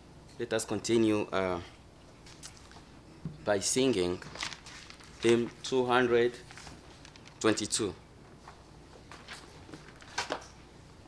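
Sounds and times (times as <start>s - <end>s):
paper pages rustling: 4.2s - 7.7s, 8.4s - 10.6s.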